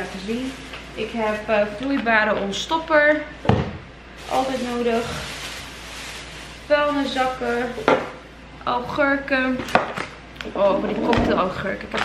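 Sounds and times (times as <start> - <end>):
plastic bag rustling: 0.0 - 3.2, 4.0 - 8.2
woman speaking: 0.0 - 3.4, 4.2 - 5.4, 6.7 - 8.0, 8.6 - 9.8, 10.4 - 12.0.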